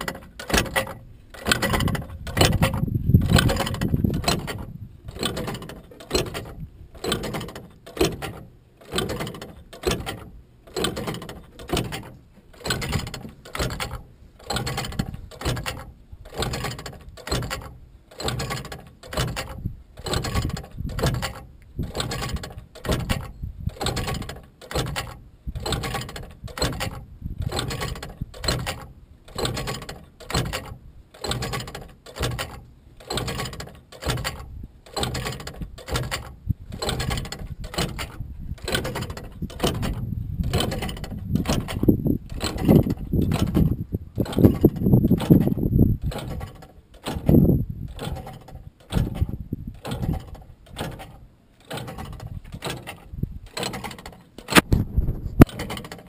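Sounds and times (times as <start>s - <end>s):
signal arm clacking back and forth: 0.0s - 54.8s, 55.4s - 56.0s.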